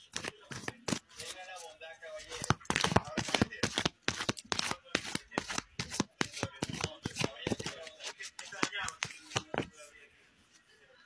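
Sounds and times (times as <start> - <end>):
cards being shuffled by hand: 0.0 - 9.8.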